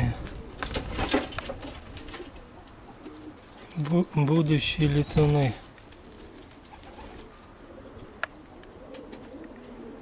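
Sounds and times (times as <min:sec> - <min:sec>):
pigeons cooing: 0:00.0 - 0:10.0
rustles: 0:00.0 - 0:10.0.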